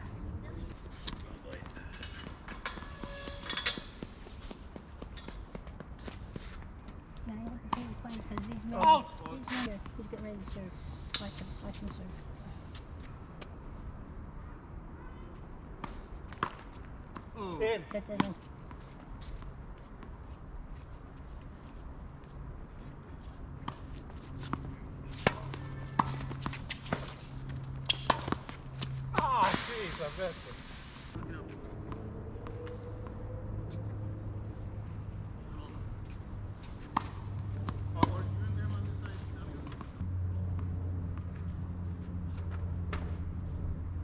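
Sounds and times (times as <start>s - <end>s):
tennis balls struck and bouncing: 23.6s - 29.5s, 36.8s - 38.4s
loud hiss: 29.4s - 31.2s.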